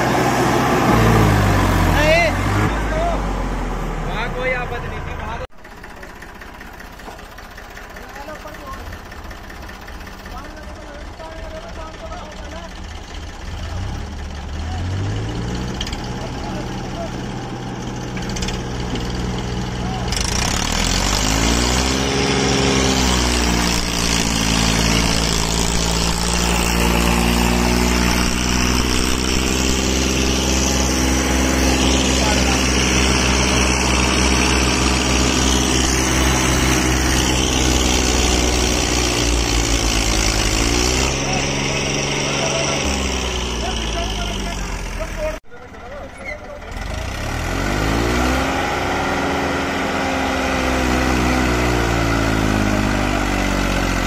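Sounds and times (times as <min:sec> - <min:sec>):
tractor diesel engine under load: 0:00.0 - 0:54.0.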